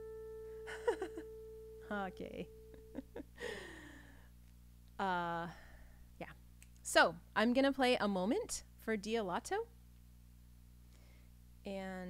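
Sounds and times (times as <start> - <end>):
held keyboard note: 0.0 - 3.2.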